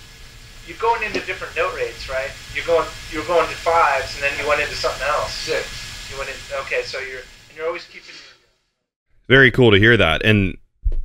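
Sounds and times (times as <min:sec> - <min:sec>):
steady low hum: 0:00.0 - 0:08.4
man talking: 0:00.6 - 0:08.4, 0:09.3 - 0:10.6.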